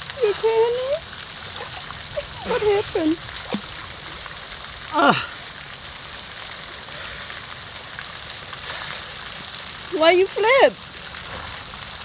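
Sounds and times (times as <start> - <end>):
water splashing on pond: 0.0 - 12.0.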